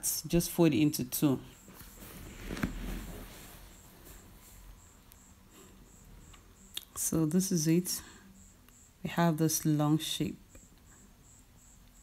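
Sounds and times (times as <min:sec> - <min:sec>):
stiff fabric folded by hand: 0:01.6 - 0:04.7.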